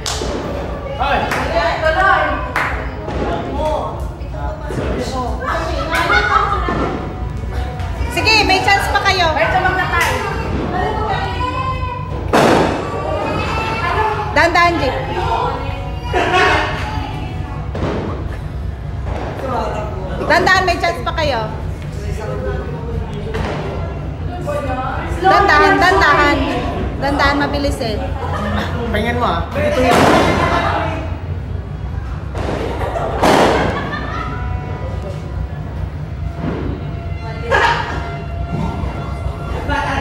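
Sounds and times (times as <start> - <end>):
low background din: 0.0 - 40.0
excited voices: 5.2 - 17.7
people laughing: 5.4 - 7.2, 15.2 - 17.3, 28.0 - 29.2, 32.6 - 35.8, 37.3 - 38.3
loud thud: 12.2 - 13.0, 17.7 - 18.4, 29.8 - 30.6, 32.3 - 33.9.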